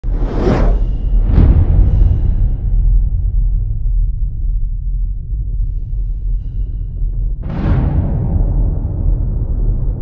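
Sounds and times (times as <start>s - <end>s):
whooshes: 0.0s - 3.2s
deep steady rumble: 0.0s - 10.0s.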